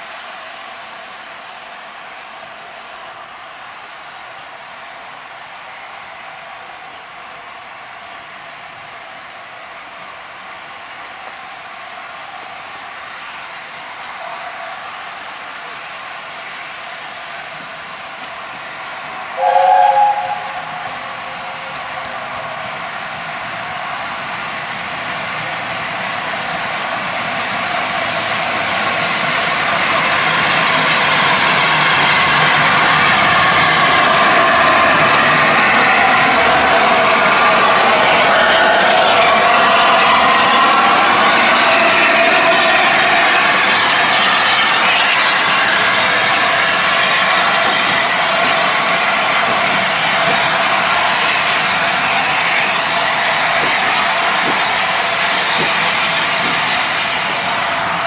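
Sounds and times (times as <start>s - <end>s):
steam hissing from cylinders: 14.2s - 58.0s
steam locomotive chime whistle: 19.4s - 22.4s.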